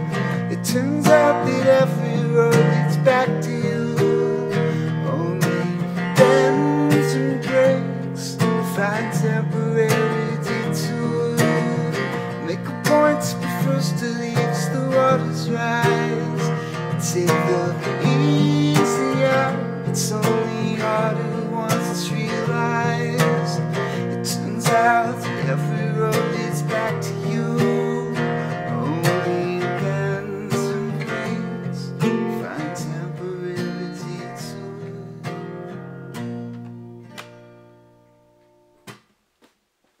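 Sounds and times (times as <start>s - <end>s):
acoustic guitar strumming: 0.0s - 39.3s.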